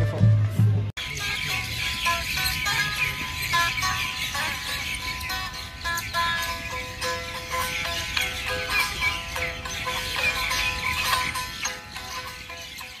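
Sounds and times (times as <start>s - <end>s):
plucked sitar: 0.0s - 13.0s.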